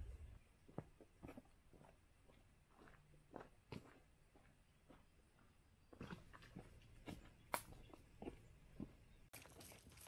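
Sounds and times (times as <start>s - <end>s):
footsteps on rocky muddy track: 0.0s - 10.0s.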